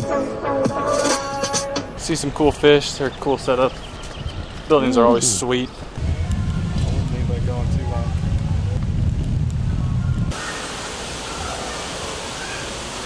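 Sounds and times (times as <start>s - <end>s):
running water rushing: 10.3s - 13.0s.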